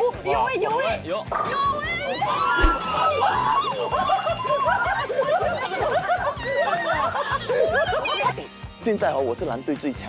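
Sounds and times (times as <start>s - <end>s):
background music: 0.0s - 10.0s
people shouting and cheering: 1.5s - 7.0s
heavy thud: 2.6s - 3.0s.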